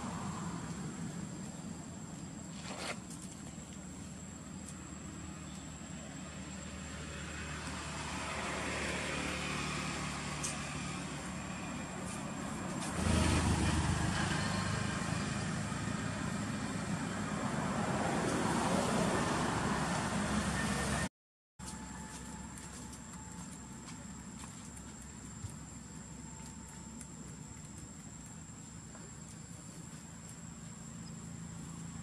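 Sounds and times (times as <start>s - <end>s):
road traffic hum: 0.0s - 32.0s.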